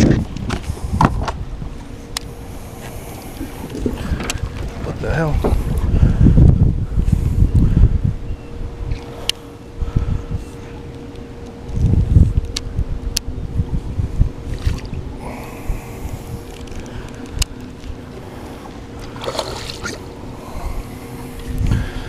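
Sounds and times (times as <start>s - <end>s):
faint steady hum: 0.0s - 22.0s
wind buffeting microphone: 0.0s - 22.0s.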